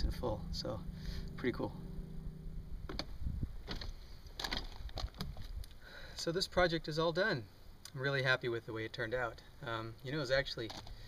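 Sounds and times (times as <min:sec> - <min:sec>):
low rumble: 0:00.0 - 0:05.7.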